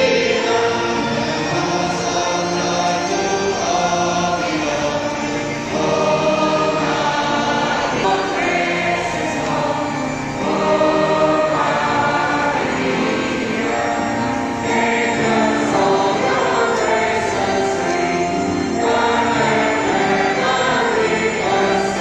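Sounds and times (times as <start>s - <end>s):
choir singing a hymn: 0.0s - 22.0s.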